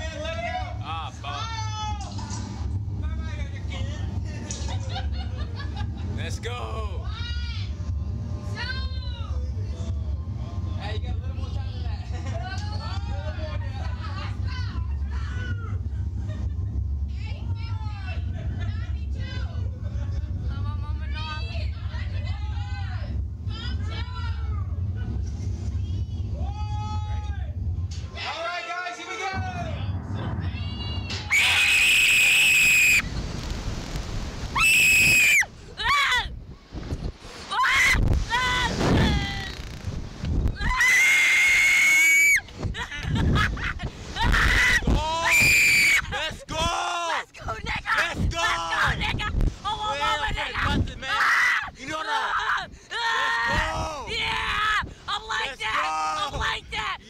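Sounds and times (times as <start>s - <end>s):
steady low rumble: 0.0s - 41.6s, 42.4s - 46.7s, 47.4s - 53.0s, 53.6s - 57.0s
people screaming: 31.2s - 33.0s, 34.6s - 36.3s, 40.6s - 42.4s.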